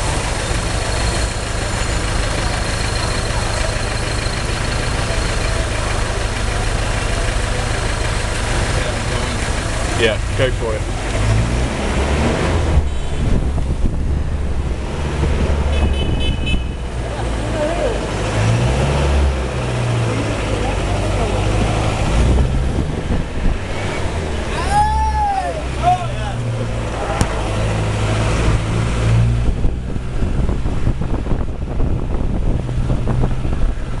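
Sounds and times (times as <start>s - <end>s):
vehicle engine under load: 0.0s - 34.0s
high horn toots: 15.7s - 16.9s.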